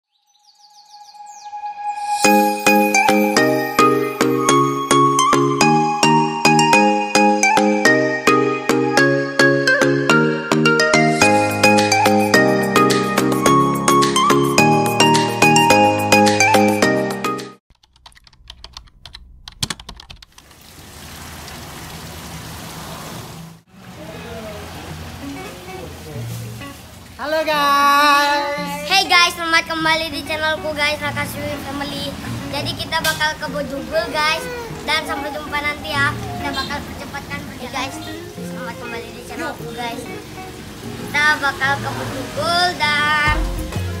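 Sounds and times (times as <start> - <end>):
birds chirping: 0.0 - 3.4, 33.5 - 41.8
quick irregular clicks: 17.7 - 20.5.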